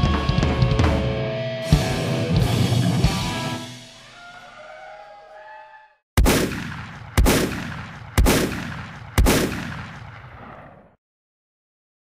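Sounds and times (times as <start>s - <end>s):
rock band chord ringing: 0.0s - 4.0s.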